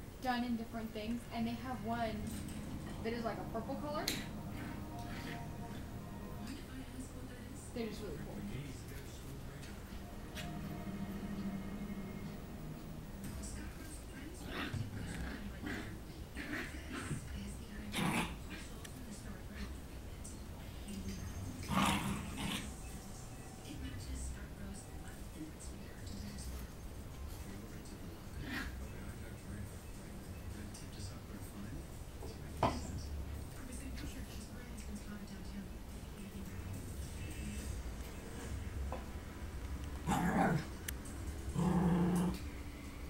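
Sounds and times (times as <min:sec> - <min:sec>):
dogs growling: 0:01.8 - 0:06.8, 0:13.2 - 0:19.0, 0:21.3 - 0:23.1, 0:26.4 - 0:29.3, 0:40.0 - 0:43.0.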